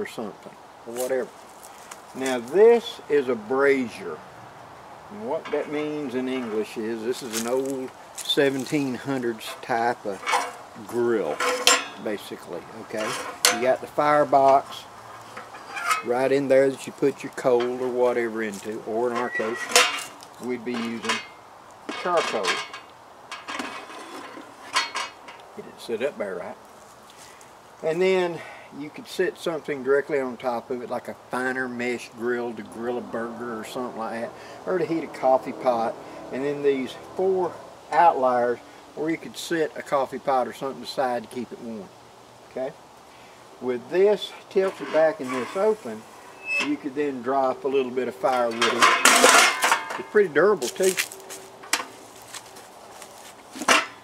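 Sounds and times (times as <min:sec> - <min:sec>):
metal grill clank: 0:05.4 - 0:07.7, 0:08.3 - 0:14.7, 0:15.3 - 0:25.4, 0:44.6 - 0:47.3, 0:48.2 - 0:51.0
metal parts rattling and clinking: 0:05.4 - 0:10.6, 0:11.2 - 0:12.1, 0:13.0 - 0:14.6, 0:15.3 - 0:16.3, 0:18.5 - 0:25.4, 0:48.3 - 0:51.9
sharp metal clank: 0:11.3 - 0:12.1, 0:13.0 - 0:13.8, 0:19.1 - 0:23.7, 0:48.4 - 0:50.1.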